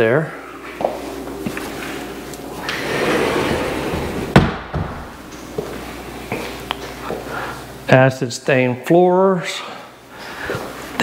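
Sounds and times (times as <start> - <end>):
door rushing as it moves: 2.7 - 5.2
door banging shut: 3.0 - 5.2.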